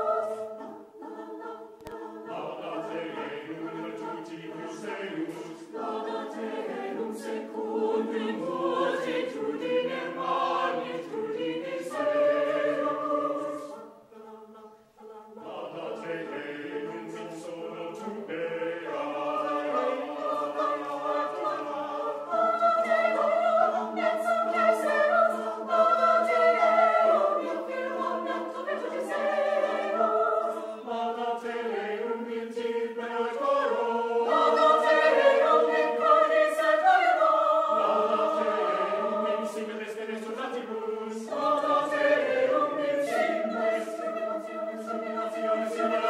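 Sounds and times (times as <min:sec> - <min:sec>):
choir singing a cappella: 0:00.0 - 0:46.0.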